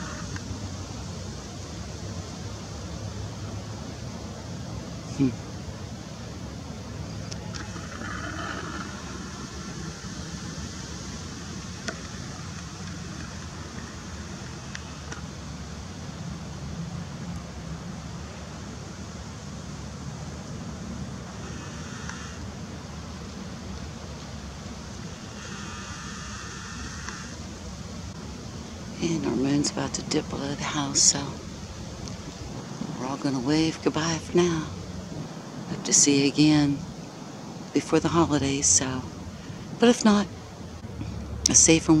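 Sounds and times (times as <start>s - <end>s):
low outdoor rumble: 0.0s - 42.0s.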